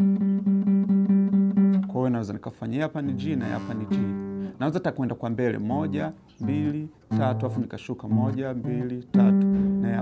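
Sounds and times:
acoustic guitar plucking one note: 0.0 - 2.2, 2.9 - 10.0.

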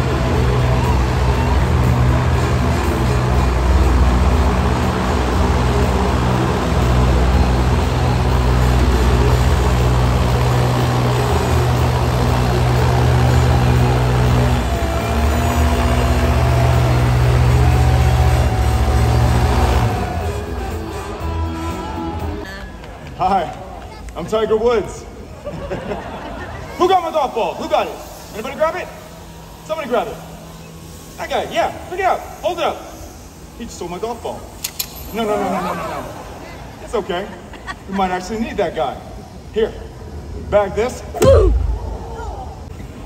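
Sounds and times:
airboat engine and propeller droning: 0.0 - 22.5, 25.0 - 43.0.

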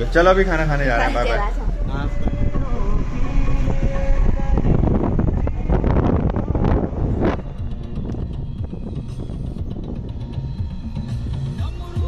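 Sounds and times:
car road and wind noise: 0.0 - 12.0.

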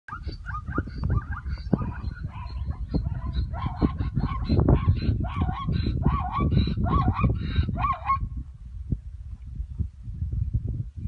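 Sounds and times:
zebras barking calls: 0.1 - 8.2.

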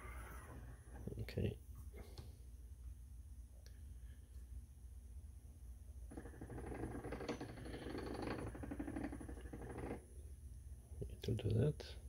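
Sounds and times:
grainy mechanical buzz: 0.0 - 1.6.

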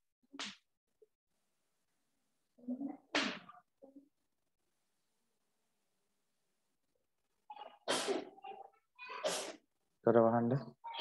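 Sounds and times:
person sneezing: 7.6 - 8.4, 9.1 - 9.6.

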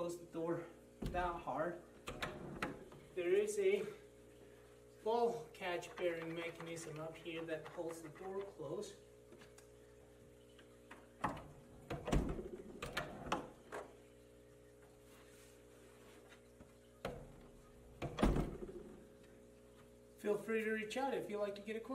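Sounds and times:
wooden door knocking shut: 18.0 - 18.8.

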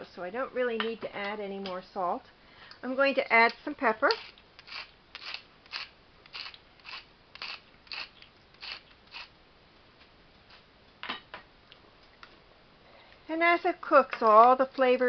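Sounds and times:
pepper grinder cracking peppercorns: 4.1 - 9.3.

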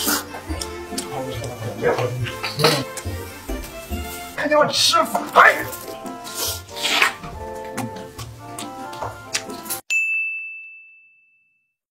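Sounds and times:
background music: 0.0 - 9.8
high bell-like ding: 9.9 - 11.8.

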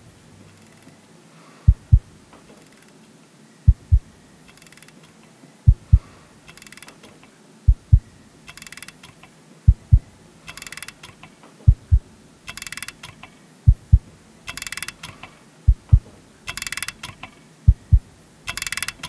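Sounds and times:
deep heartbeat thumps: 1.7 - 2.1, 3.7 - 4.1, 5.7 - 6.1, 7.7 - 8.1, 9.7 - 10.1, 11.7 - 12.1, 13.7 - 14.1, 15.7 - 16.1, 17.7 - 18.1
rattling ratchet-like clicking: 4.5 - 5.1, 6.5 - 7.0, 8.5 - 9.3, 10.4 - 11.3, 12.5 - 13.3, 14.5 - 15.4, 16.5 - 17.4, 18.5 - 19.0.

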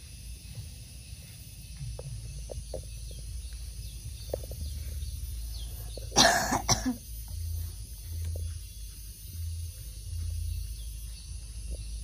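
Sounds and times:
person coughing: 6.1 - 7.0.

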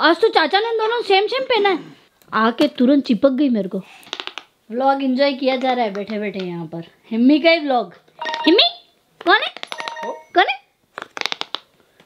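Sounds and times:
fidget toy clicks and pops: 4.0 - 4.5, 11.0 - 11.7.

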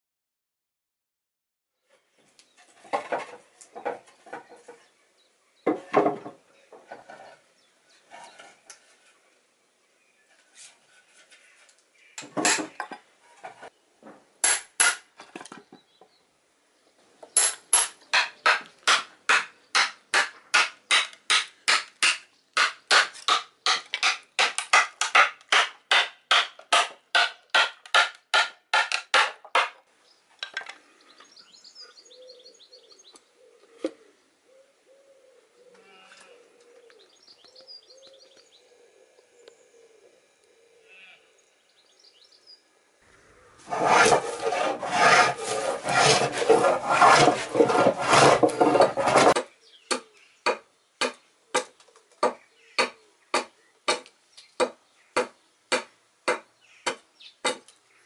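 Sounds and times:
birds calling faintly: 1.8 - 14.0, 29.4 - 58.0
strikes driving wedges into wood: 14.4 - 15.5, 17.4 - 29.8, 43.7 - 57.7.

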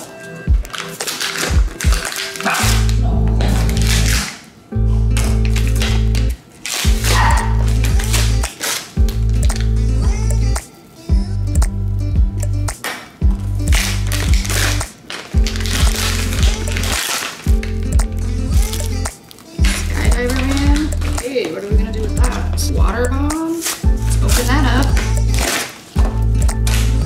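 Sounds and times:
music with heavy bass beat: 1.5 - 4.3, 5.0 - 21.2, 21.8 - 27.0
person singing: 6.9 - 12.4, 15.7 - 27.0.

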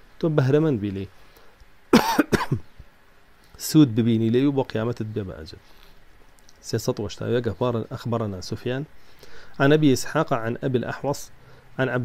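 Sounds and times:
man coughing: 1.9 - 2.7.

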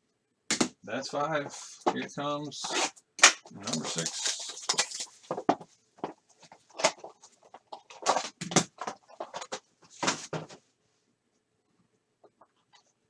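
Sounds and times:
foil wrapper crinkling: 3.6 - 5.4.

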